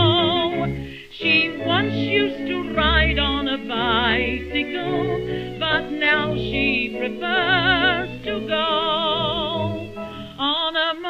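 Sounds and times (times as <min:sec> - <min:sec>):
musical accompaniment: 0:00.0 - 0:11.0
woman singing with vibrato: 0:00.0 - 0:11.0.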